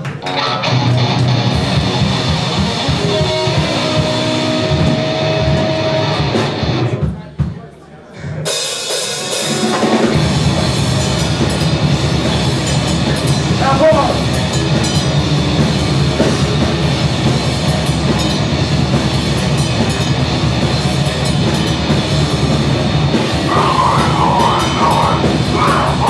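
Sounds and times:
live rock band playing: 0.0s - 7.1s, 8.5s - 26.0s.

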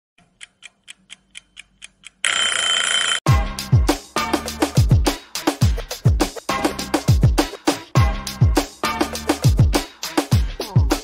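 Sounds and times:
clock-like ticks: 0.2s - 2.5s
electronic dance music: 3.3s - 11.0s.

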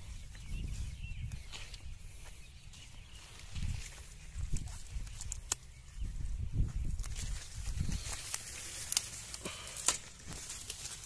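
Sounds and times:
rustling of dry leaves underfoot: 0.0s - 11.0s.

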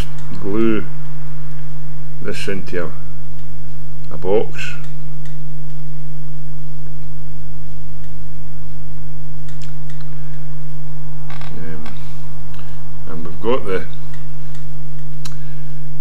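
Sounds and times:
electrical hum: 0.0s - 16.0s.

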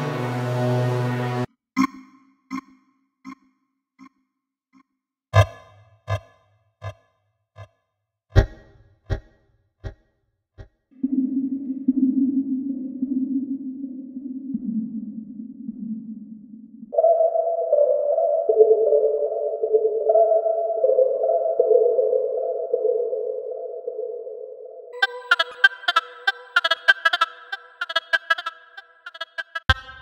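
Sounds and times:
synthetic string pad chords: 0.0s - 2.0s.

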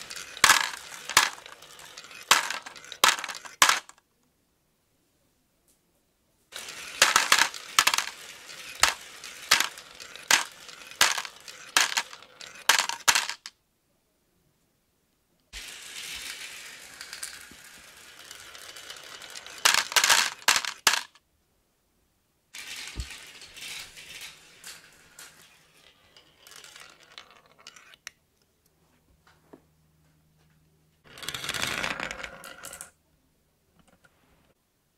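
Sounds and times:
marbles rolling down marble run: 0.0s - 4.0s, 6.5s - 13.5s, 15.6s - 21.2s, 22.6s - 28.1s, 31.1s - 33.0s.

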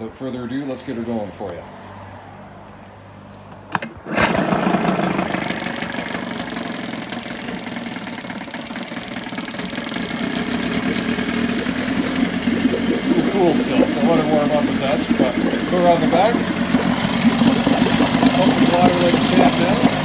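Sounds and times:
outboard engine idling: 4.3s - 20.0s.

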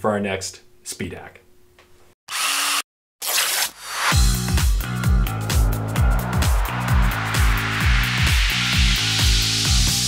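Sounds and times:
drill whirring: 2.3s - 4.1s.

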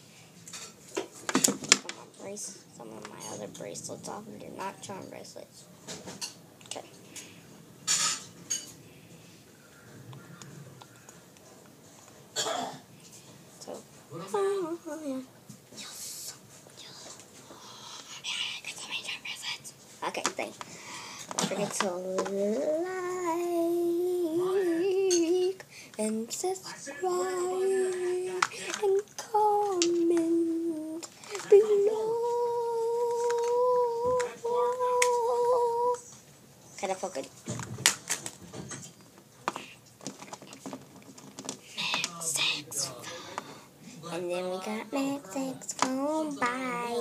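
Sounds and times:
child whispering: 14.3s - 19.8s, 41.7s - 42.9s.

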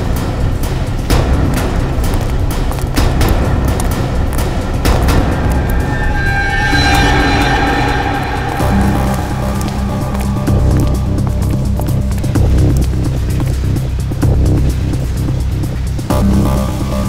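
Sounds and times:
deep low rumbling pulse: 0.0s - 17.0s
tense dramatic score: 0.0s - 17.0s.

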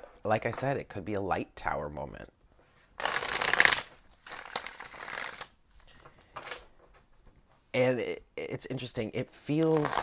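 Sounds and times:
cards being shuffled: 3.0s - 5.5s, 9.6s - 10.0s.

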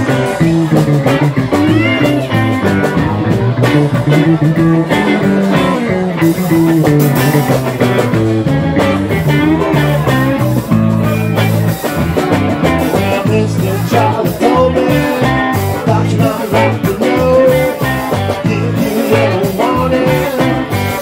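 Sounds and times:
drum kit: 0.0s - 21.0s
electric bass: 0.0s - 21.0s
electric guitar with bending notes: 0.0s - 21.0s.

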